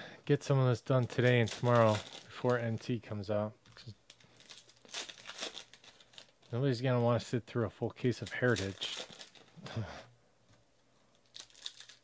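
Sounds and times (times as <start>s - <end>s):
foil wrapper rustle: 1.0s - 2.7s, 4.1s - 6.6s, 8.2s - 9.6s, 11.2s - 12.0s.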